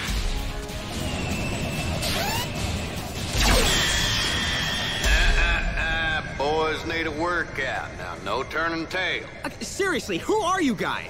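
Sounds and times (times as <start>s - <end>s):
action soundtrack music: 0.0s - 11.0s.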